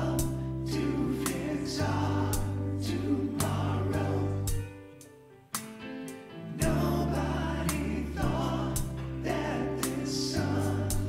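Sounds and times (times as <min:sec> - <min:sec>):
person singing: 0:00.0 - 0:04.7, 0:06.5 - 0:11.0
keyboard sustained chords: 0:00.0 - 0:05.0, 0:05.9 - 0:11.0.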